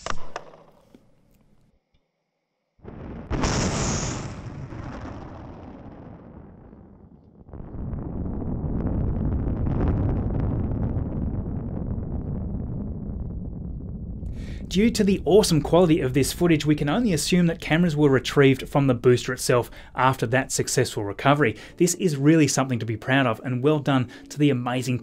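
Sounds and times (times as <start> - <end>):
sudden bang: 2.8 - 20.0.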